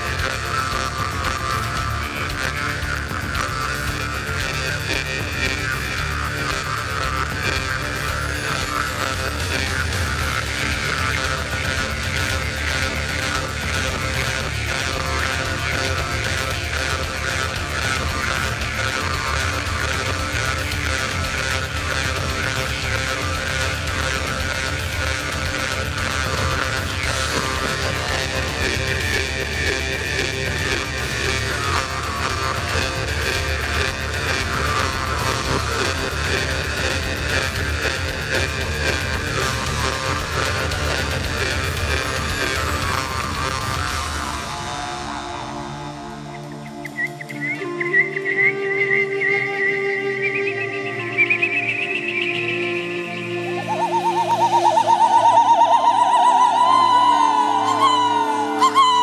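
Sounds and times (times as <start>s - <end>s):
jaw harp twanging drone: 0.0s - 59.0s.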